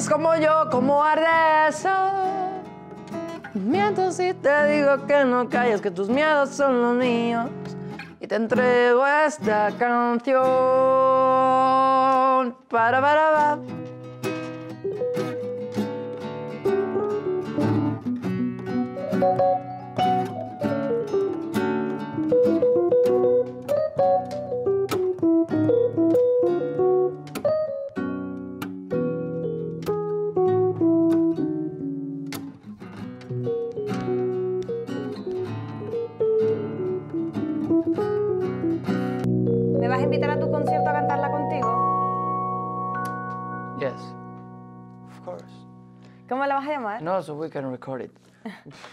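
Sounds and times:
acoustic guitar picking: 0.0s - 12.3s, 13.3s - 46.2s
piano chords: 14.8s - 46.0s.

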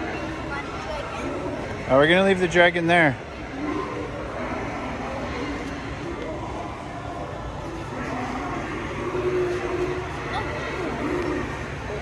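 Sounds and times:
store interior background noise: 0.0s - 12.0s.

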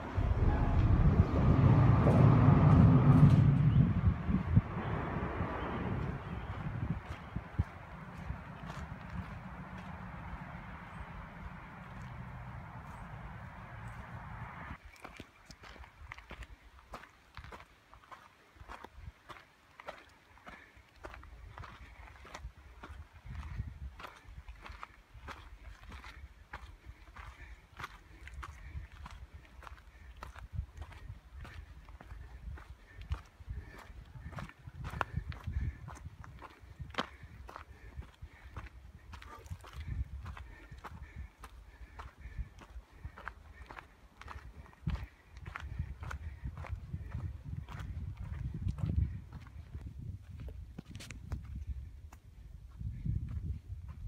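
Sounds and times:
low rumble: 0.0s - 14.8s
footsteps on leafy dirt trail: 6.0s - 14.2s, 14.8s - 54.0s.

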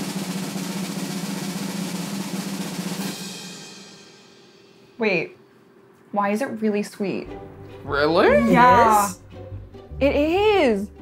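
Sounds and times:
snare drum roll: 0.0s - 4.1s.

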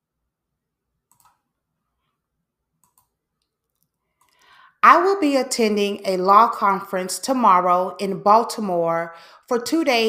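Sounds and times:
computer mouse clicks: 1.1s - 1.4s, 2.8s - 4.5s
person breathing: 4.2s - 4.8s, 9.1s - 9.5s
person speaking: 4.8s - 10.0s.

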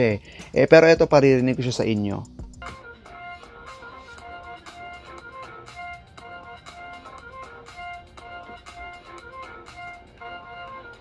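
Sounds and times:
instrumental music from laptop speakers: 0.0s - 11.0s.

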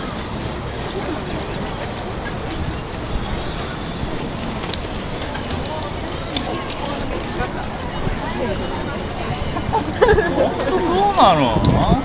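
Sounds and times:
faint distant voices: 0.0s - 12.0s
outdoor background noise: 0.0s - 12.0s.

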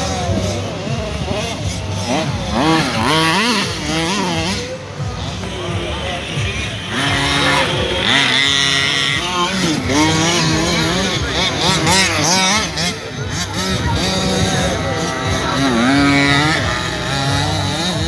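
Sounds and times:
rc buggy engines revving: 0.0s - 18.0s.

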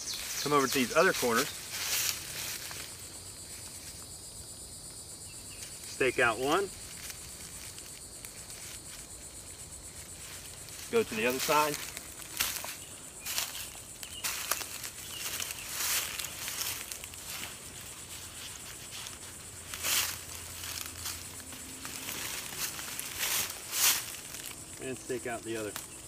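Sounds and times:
footsteps crunching through leaves: 0.0s - 4.0s, 5.5s - 26.0s
rustling and scraping in leaves: 0.0s - 4.0s, 5.5s - 26.0s
high insect drone: 0.0s - 26.0s.

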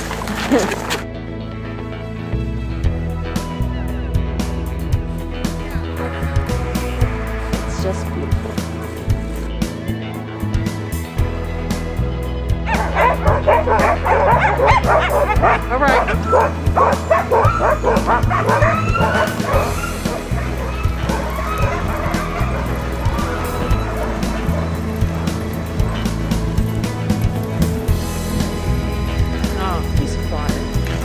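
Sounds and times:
background music: 0.0s - 31.0s
sled dogs barking and yipping: 12.6s - 29.5s.

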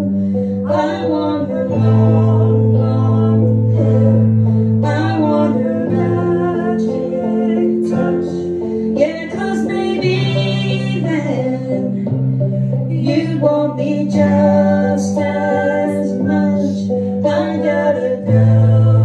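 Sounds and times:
woman singing: 0.0s - 19.0s.

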